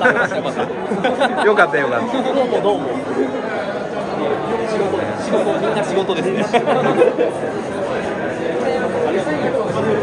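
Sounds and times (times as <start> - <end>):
busy hall chatter: 0.0 - 10.0.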